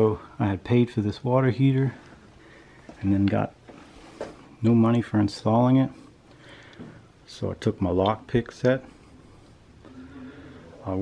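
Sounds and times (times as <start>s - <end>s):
man talking: 0.0s - 2.0s, 3.0s - 3.6s, 4.6s - 6.1s, 7.2s - 8.9s, 10.8s - 11.0s
faint low hum: 0.0s - 11.0s.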